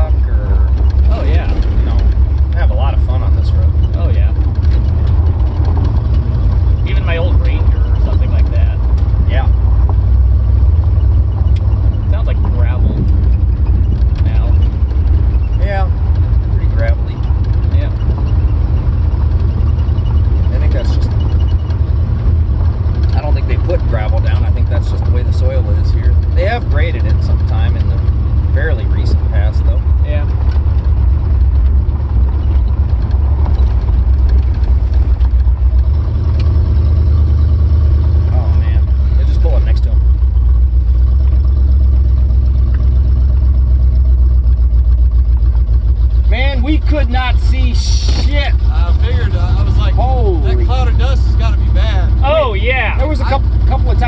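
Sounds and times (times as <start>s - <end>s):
car engine rumble: 0.0s - 54.0s.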